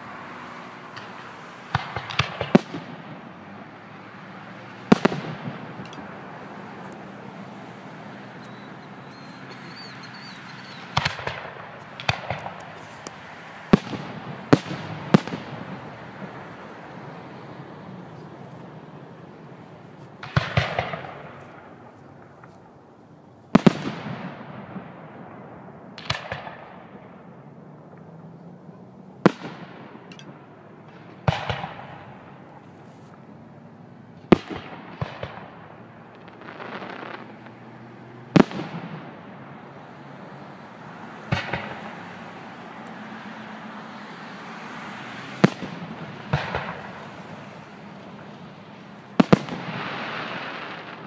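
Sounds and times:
fireworks bangs: 0.0 - 51.0.

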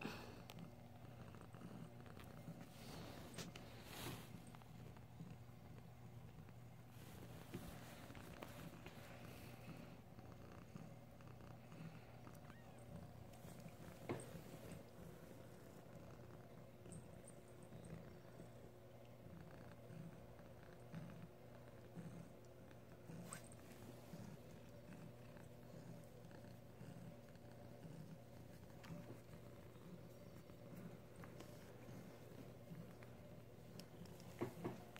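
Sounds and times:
cat purring: 0.0 - 34.9
soft ticks and rustles: 0.4 - 10.6, 12.3 - 34.9.

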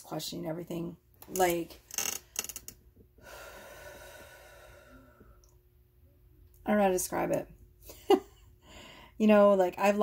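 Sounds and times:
woman breathing in: 3.2 - 5.5, 8.6 - 9.2.

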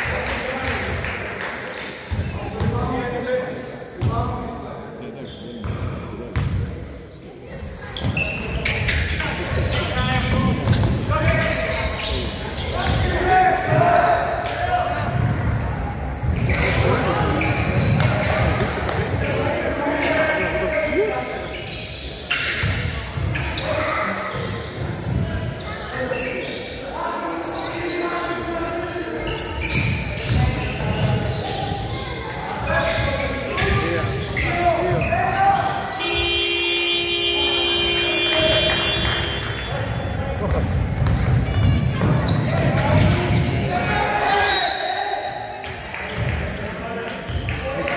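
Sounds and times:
people calling out: 33.5 - 39.7
basketball bouncing on wooden floor: 40.5 - 43.6.

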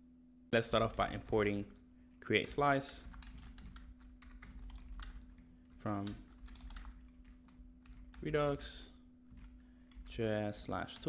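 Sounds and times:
keyboard typing clicks: 2.9 - 8.6.

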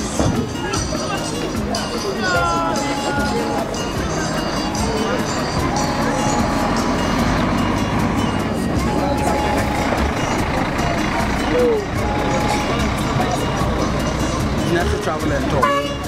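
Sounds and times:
bus engine rumbling: 0.0 - 16.0
crowd chatter: 0.0 - 16.0.

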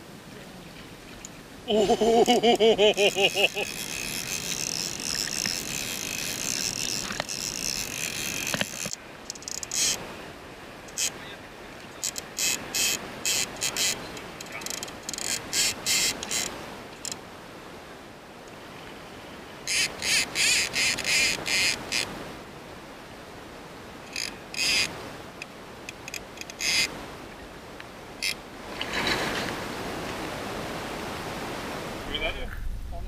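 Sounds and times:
river rushing: 0.0 - 32.4
fishing reel drag clicking: 3.3 - 10.0, 12.0 - 17.2, 19.7 - 22.1, 24.1 - 24.9.

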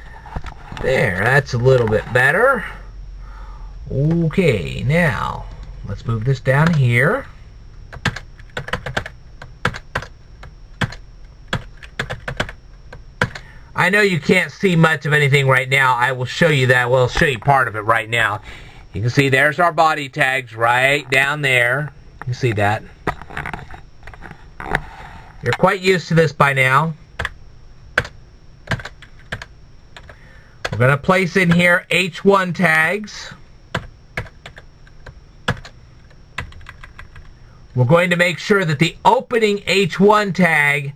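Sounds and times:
typing on computer keyboard: 8.0 - 10.1, 10.8 - 12.6, 28.0 - 30.8, 35.5 - 35.7, 36.4 - 37.3.

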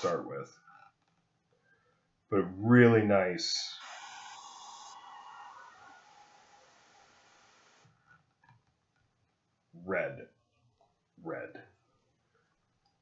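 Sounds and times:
airbrush spraying hiss: 3.6 - 7.8.

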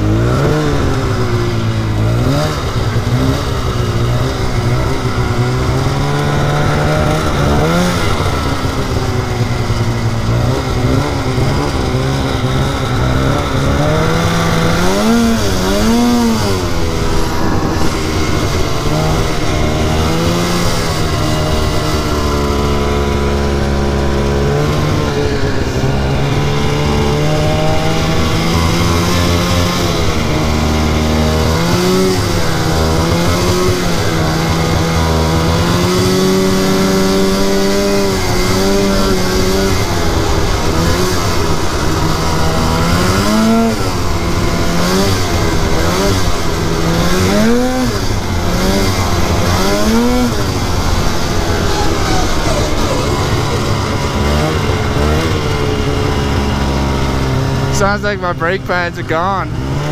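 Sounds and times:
snowmobile engine revving: 0.0 - 59.9.

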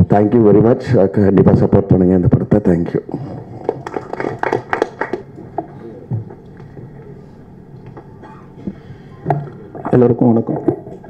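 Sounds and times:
low hum through speakers: 0.0 - 11.0.

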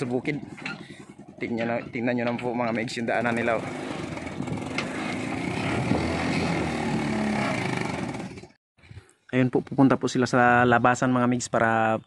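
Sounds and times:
small engine running: 0.0 - 8.6.

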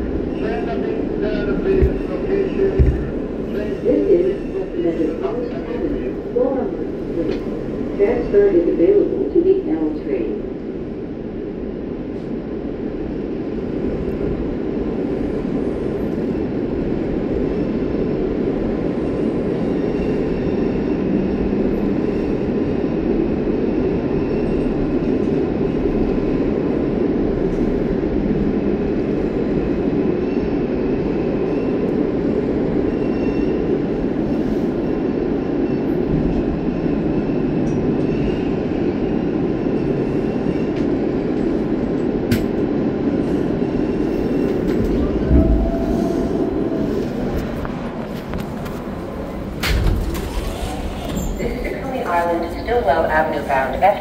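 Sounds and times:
subway wheels rumbling on rail: 0.0 - 54.0.

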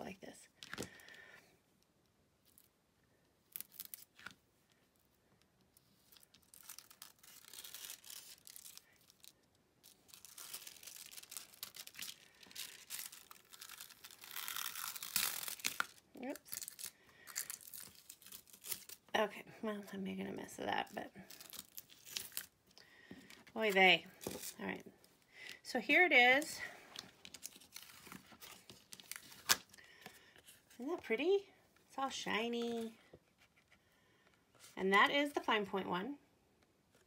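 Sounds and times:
foil crinkling and rustling: 6.0 - 19.0, 27.0 - 29.8.

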